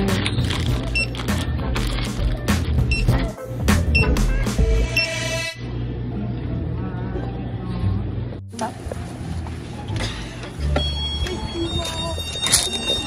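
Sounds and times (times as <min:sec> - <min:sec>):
plastic packaging crinkling: 0:00.2 - 0:02.2
barcode scanner beeping: 0:00.8 - 0:01.4, 0:02.9 - 0:03.2, 0:10.6 - 0:13.0.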